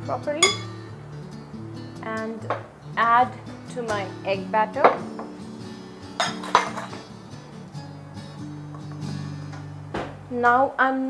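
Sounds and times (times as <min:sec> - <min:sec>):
background music: 0:00.0 - 0:11.0
spoon clinking against bowl: 0:00.4 - 0:00.8, 0:06.2 - 0:07.0.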